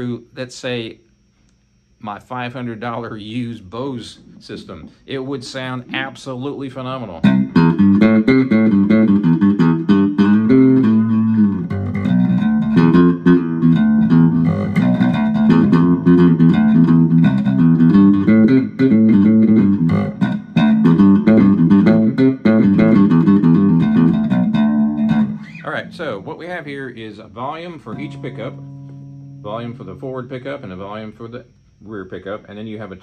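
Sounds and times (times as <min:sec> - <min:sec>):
plucked electric bass licks: 0:03.8 - 0:31.9.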